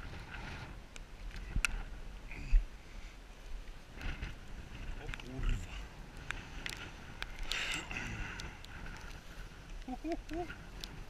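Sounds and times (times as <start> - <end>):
rustling of clothing and grass: 0.0 - 11.0.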